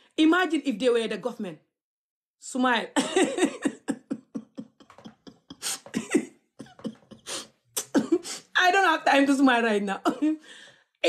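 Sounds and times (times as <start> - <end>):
woman laughing: 3.0 - 8.5.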